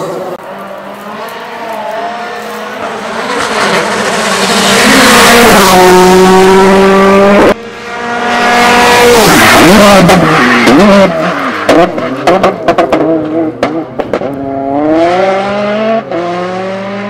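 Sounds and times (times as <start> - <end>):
rally car engine high-revving: 0.0 - 17.0.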